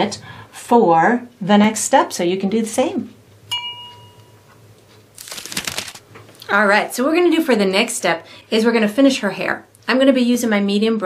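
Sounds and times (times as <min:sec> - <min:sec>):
chime ringing: 0:03.5 - 0:04.4.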